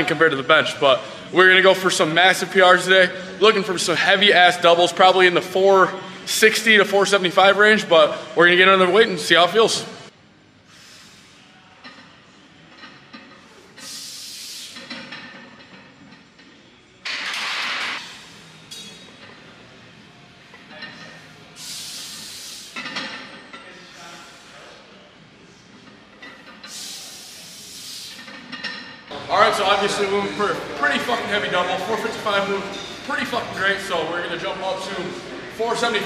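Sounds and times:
forceful hissing breaths: 0:10.6 - 0:11.6, 0:13.6 - 0:14.9, 0:21.3 - 0:22.8, 0:26.6 - 0:28.3.

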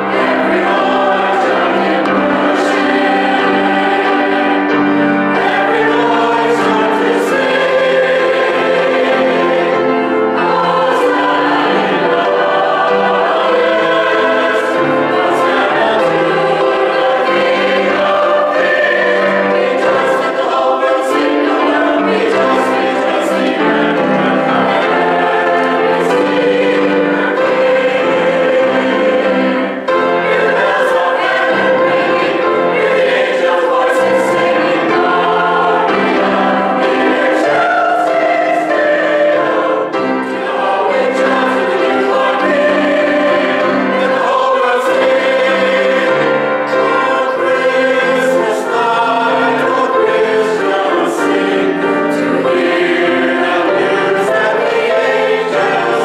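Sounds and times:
mixed choir singing: 0:00.0 - 0:56.0.

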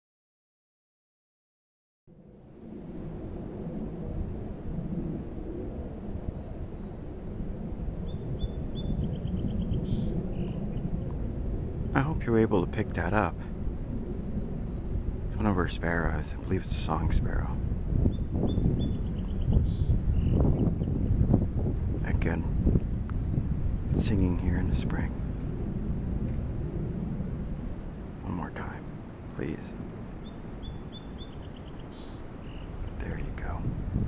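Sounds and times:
wind rumbling on microphone: 0:02.1 - 0:34.0
sparrow singing: 0:08.0 - 0:11.1, 0:18.0 - 0:21.0, 0:29.4 - 0:33.7.

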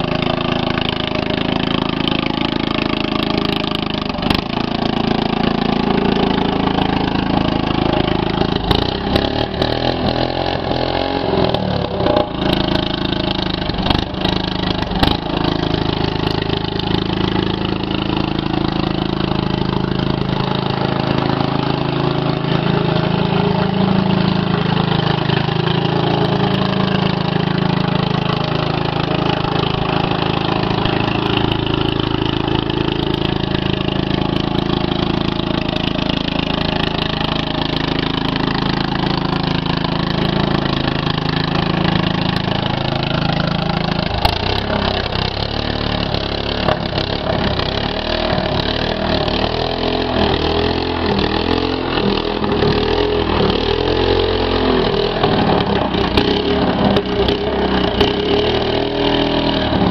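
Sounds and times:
lawn mower engine running: 0:00.0 - 0:59.9.

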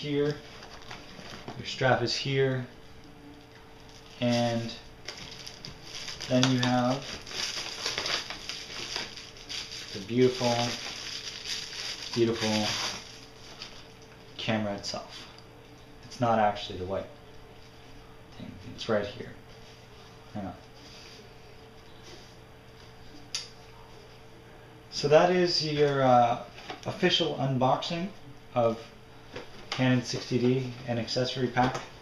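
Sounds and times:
bubble wrap rustling and crinkling: 0:00.2 - 0:01.8, 0:03.2 - 0:14.4.

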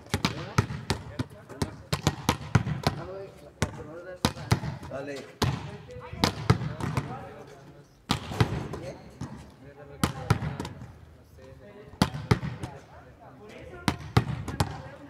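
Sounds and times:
hand slapping volleyball: 0:00.0 - 0:07.2, 0:08.1 - 0:10.9, 0:12.0 - 0:12.8, 0:13.9 - 0:15.0
ball hitting concrete wall: 0:00.0 - 0:07.4, 0:08.0 - 0:10.9, 0:11.9 - 0:12.9, 0:13.8 - 0:15.0.

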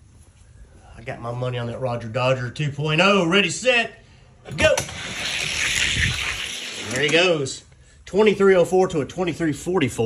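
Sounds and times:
toy car wheels whirring on track: 0:04.7 - 0:07.2.

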